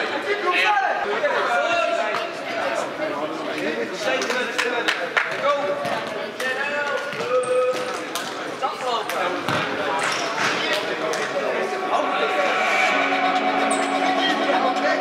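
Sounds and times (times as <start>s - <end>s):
players' voices: 0.0s - 15.0s
sneaker squeaks: 9.5s - 10.7s
steady tone: 11.6s - 15.0s.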